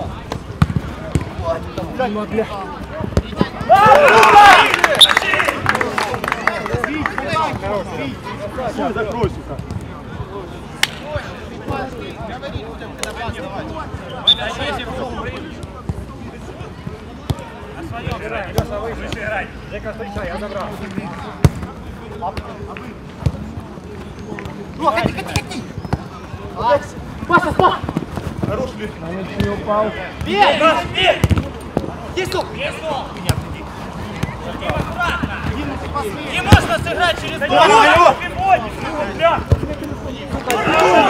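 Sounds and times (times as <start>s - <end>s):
players shouting: 0.0s - 9.4s, 24.5s - 41.0s
football kick thuds: 31.1s - 31.9s.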